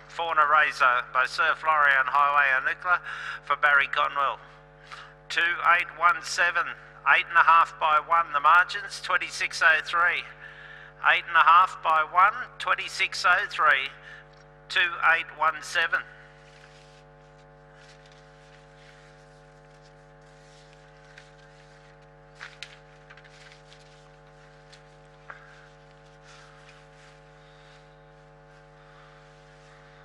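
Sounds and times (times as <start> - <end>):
faint electrical hum: 0.0 - 30.0.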